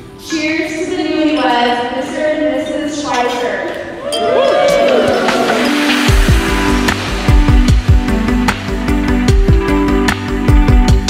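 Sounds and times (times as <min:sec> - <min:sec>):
guests cheering and clapping: 0:04.0 - 0:06.4
electronic dance music: 0:04.5 - 0:11.0.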